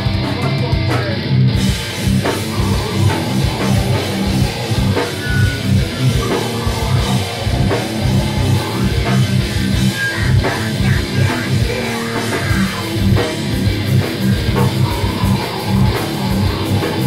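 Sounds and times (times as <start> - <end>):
distorted electric guitars: 0.0 - 17.0
drum kit: 0.0 - 17.0.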